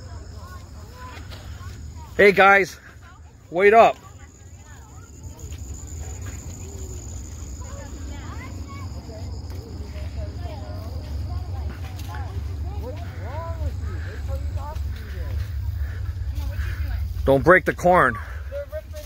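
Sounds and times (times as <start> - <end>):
distant children shouting: 0.0 - 19.0
low microphone rumble: 5.1 - 19.0.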